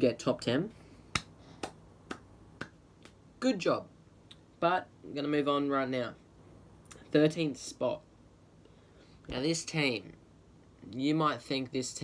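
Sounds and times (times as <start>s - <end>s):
finger snaps: 1.1s - 3.2s.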